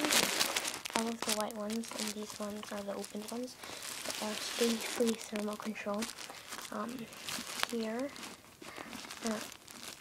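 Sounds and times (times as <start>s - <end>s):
plastic wrappers crinkling: 0.0s - 10.0s.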